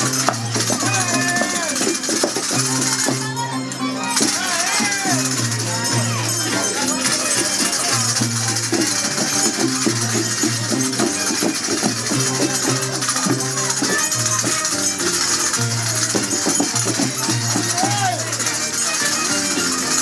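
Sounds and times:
shaken rattles hissing: 0.0s - 20.0s
violin melody: 0.0s - 20.0s.

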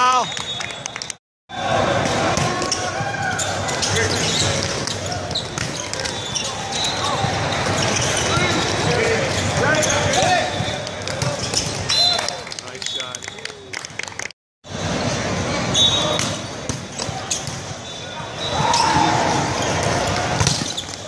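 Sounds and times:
sneakers squeaking on court: 2.4s - 12.2s, 14.9s - 21.0s.

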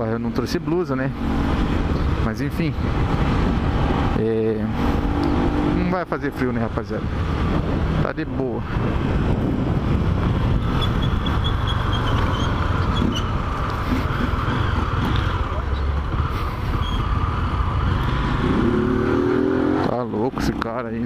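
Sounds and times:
wind rushing over microphone: 1.0s - 19.9s.

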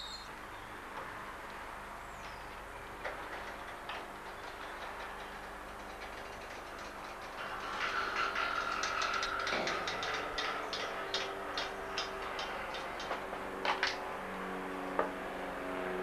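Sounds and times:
garage door clattering and squealing: 2.3s - 14.0s
garage door mechanism rumbling: 2.3s - 14.2s.

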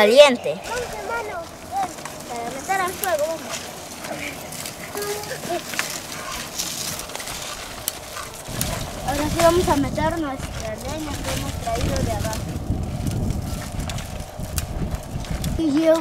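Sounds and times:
children's voices calling: 0.0s - 16.0s
footsteps on dirt path: 0.6s - 16.0s
wind rumble on microphone: 6.4s - 16.0s.

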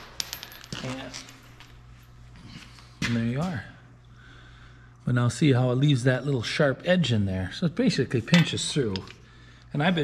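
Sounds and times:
metal pipe clinking on concrete: 0.0s - 1.8s, 8.3s - 9.2s
low steady hum: 0.0s - 10.0s.

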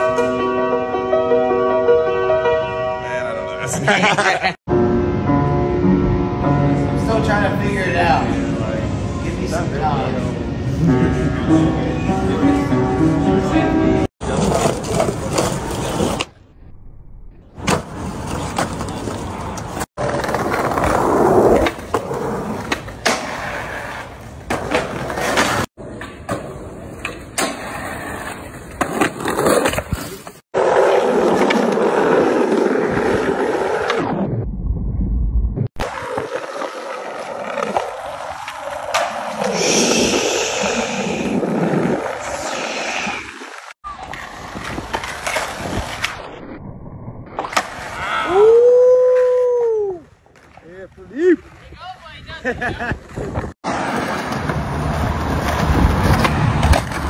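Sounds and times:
skateboard wheels rolling on bricks: 14.2s - 34.2s, 35.8s - 46.4s, 47.4s - 57.0s.

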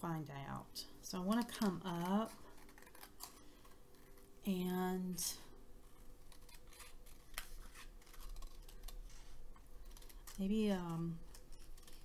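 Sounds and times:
scissors snipping paper: 1.2s - 4.2s, 6.2s - 9.2s, 9.8s - 12.0s.

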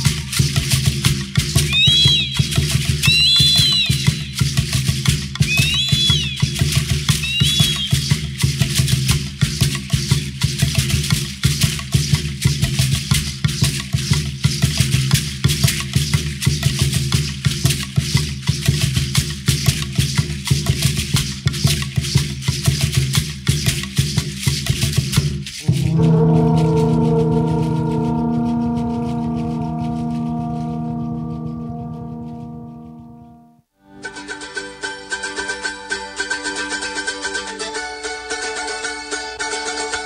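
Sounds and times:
rattles shaken rhythmically: 0.0s - 27.2s
high gliding whistle: 1.6s - 4.8s, 5.4s - 8.4s, 25.6s - 33.4s
low steady drum beat: 6.2s - 31.7s.

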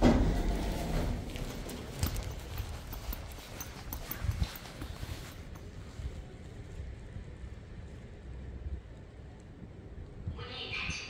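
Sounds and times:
footsteps on stone floor: 0.0s - 6.8s.

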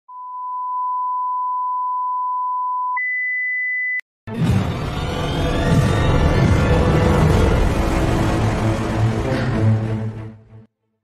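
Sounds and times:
steady test tone beep: 0.1s - 4.0s.

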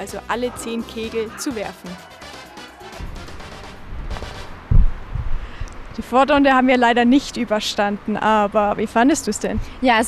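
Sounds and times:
low thuds and rumble: 3.0s - 5.7s.

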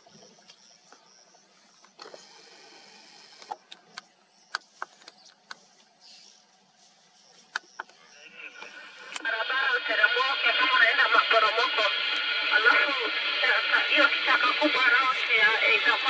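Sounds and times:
radio static hiss: 1.4s - 16.0s
voices over two-way radio: 7.4s - 16.0s.

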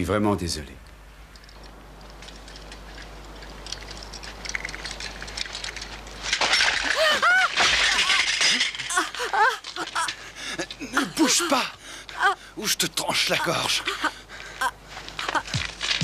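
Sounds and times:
clattering and scuffling: 1.3s - 10.9s, 14.9s - 16.0s
woman crying out: 8.9s - 10.2s, 10.8s - 12.6s, 13.2s - 15.6s.

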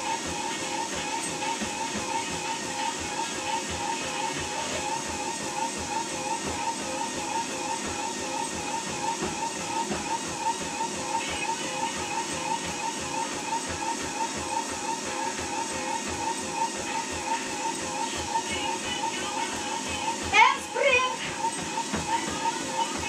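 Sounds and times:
treadmill motor whine: 0.0s - 23.0s
running footfalls on belt: 20.2s - 23.0s.

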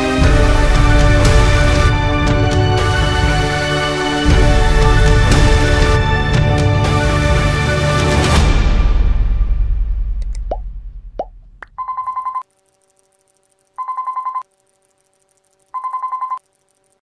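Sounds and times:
background music: 0.0s - 11.6s
short rising blips: 11.2s - 17.0s
telephone ringing: 11.8s - 12.5s, 13.8s - 14.5s, 15.7s - 16.5s.

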